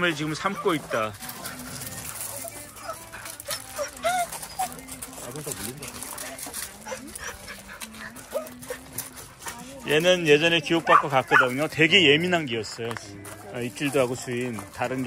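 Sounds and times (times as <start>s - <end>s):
dogs whimpering and squeaking: 0.0s - 12.1s
paws crunching on gravel: 0.0s - 15.0s.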